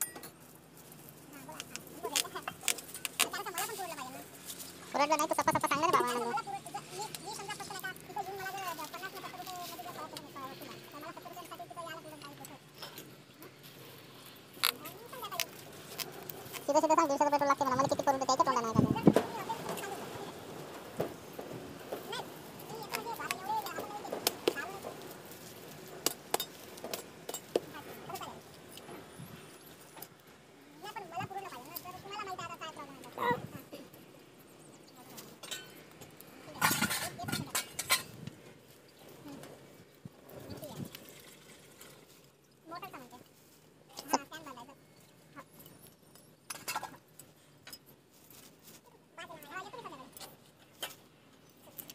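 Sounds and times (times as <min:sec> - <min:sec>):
faint voices: 0:01.2 - 0:26.0.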